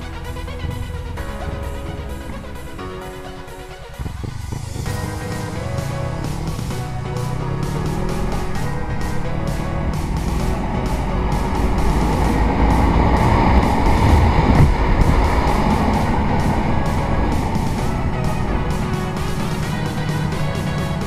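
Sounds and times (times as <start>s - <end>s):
background guitar music: 0.0s - 21.0s
motorcycle engine: 0.0s - 21.0s.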